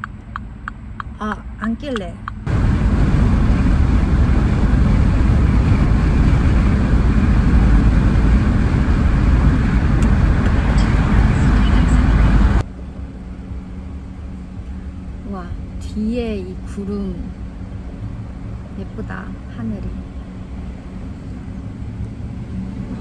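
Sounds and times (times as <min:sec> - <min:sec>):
car cabin hum: 0:00.0 - 0:23.0
wind and road noise inside car: 0:00.0 - 0:23.0.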